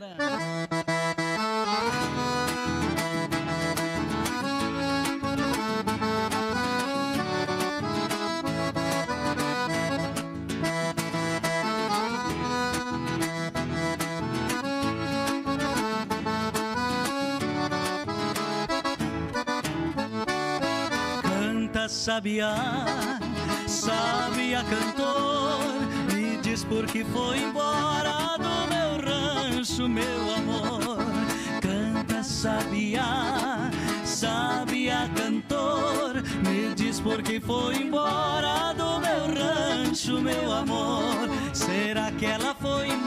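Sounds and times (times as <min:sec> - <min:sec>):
accordion playing: 0:00.0 - 0:43.0.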